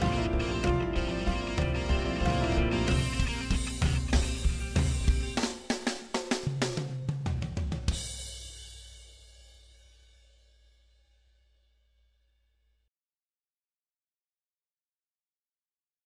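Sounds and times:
quick drum hits: 0.0 - 9.0
band music with drum kit: 0.0 - 9.4.

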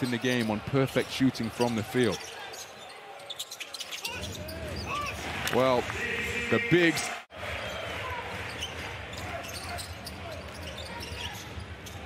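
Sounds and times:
sneakers squeaking: 0.0 - 5.2, 8.5 - 12.0
arena crowd noise: 0.0 - 12.0.

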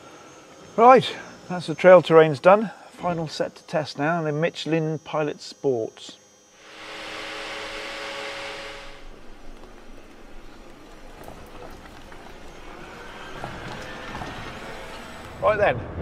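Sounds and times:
faint rising whine: 0.0 - 16.0
electric vehicle low rumble: 6.4 - 16.0.

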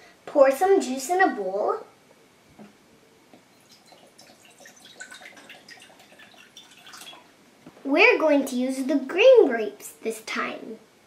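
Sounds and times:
juice splashing into bowl: 3.5 - 7.3.

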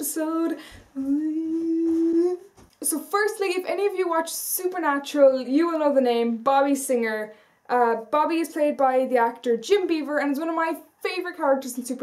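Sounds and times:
woman humming: 1.0 - 2.6.

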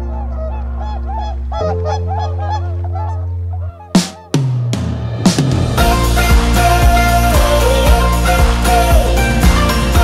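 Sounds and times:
geese honking: 0.0 - 4.4.

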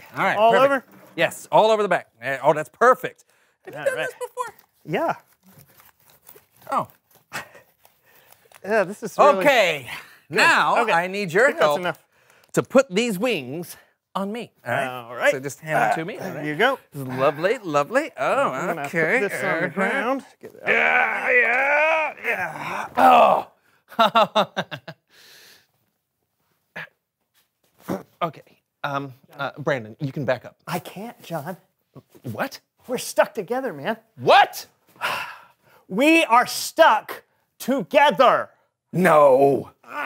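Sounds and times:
man grunting: 20.6 - 23.6
person saying oh: 20.7 - 23.5.

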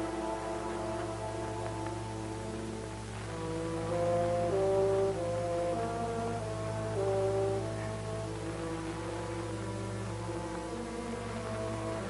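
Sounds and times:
slow melody of held notes: 0.0 - 12.0
steady low hum: 0.0 - 12.0.

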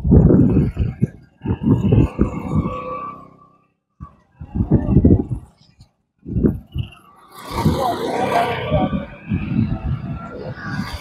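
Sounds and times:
wind buffeting microphone: 0.0 - 3.4, 4.0 - 11.0
steady rushing noise: 0.0 - 11.0.

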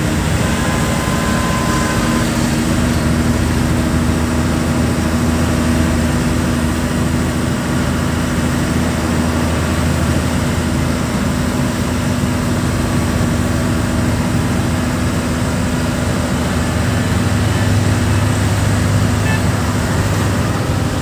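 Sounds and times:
diesel truck engine droning: 0.0 - 21.0.

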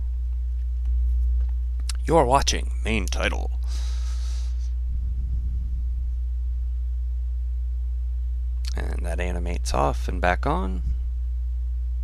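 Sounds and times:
low electrical hum: 0.0 - 12.0
soft hiss: 3.0 - 7.1.

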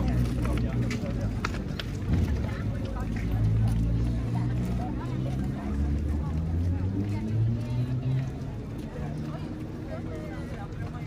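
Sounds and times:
faint chatter of people: 0.0 - 11.0.

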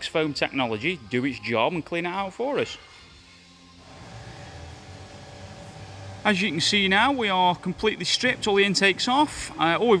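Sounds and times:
steady low hum: 2.8 - 10.0.

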